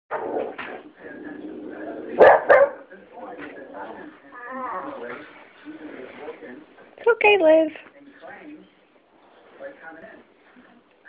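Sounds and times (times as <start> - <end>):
dog barking: 2.2 - 2.8.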